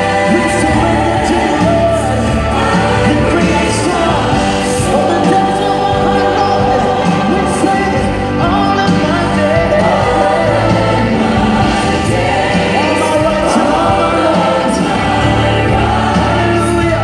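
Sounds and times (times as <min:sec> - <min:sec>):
gospel choir singing: 0:00.0 - 0:17.0.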